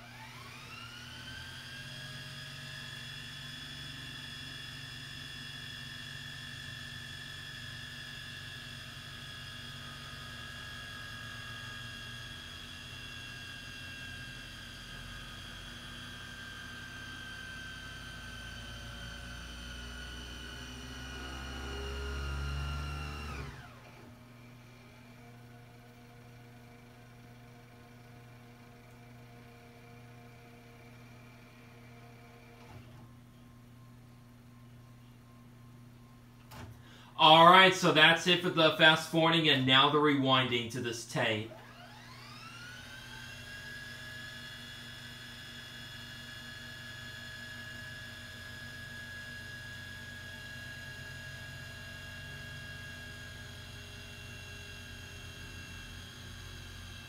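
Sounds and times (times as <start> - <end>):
tape deck motor whine: 0.0 - 34.0, 36.4 - 57.0.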